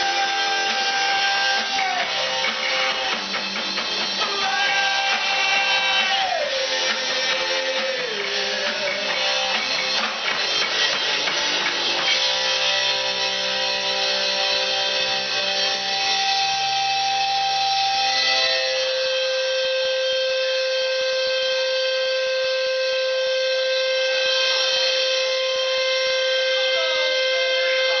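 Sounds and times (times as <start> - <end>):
electric guitar chord ringing: 0.0 - 28.0
steady held guitar tone: 0.0 - 28.0.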